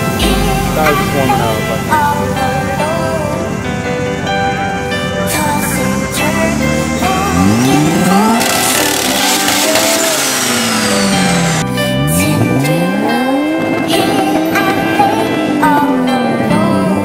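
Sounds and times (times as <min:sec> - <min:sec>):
background music: 0:00.0 - 0:17.0
rotary engine revving: 0:00.0 - 0:17.0.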